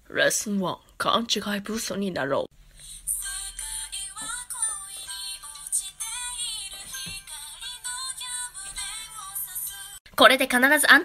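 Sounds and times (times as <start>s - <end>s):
pop music: 2.8s - 10.0s.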